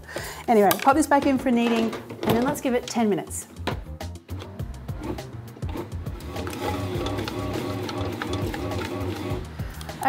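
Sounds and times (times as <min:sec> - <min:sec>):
background music: 0:00.0 - 0:10.0
bread maker motor kneading: 0:04.4 - 0:09.5.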